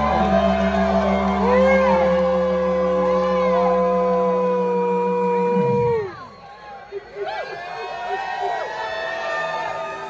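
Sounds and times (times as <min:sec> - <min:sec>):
rock band sustaining chord: 0:00.0 - 0:05.7
rising and falling cries: 0:00.0 - 0:06.4.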